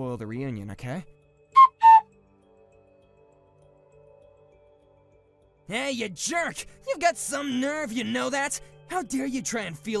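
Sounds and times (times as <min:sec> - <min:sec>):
faint background music: 0:00.0 - 0:10.0
two-note whistle sound effect: 0:01.6 - 0:02.1.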